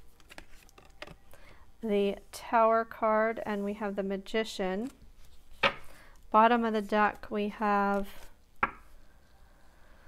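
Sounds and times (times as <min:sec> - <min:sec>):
card tapping on table: 0:08.6 - 0:08.9.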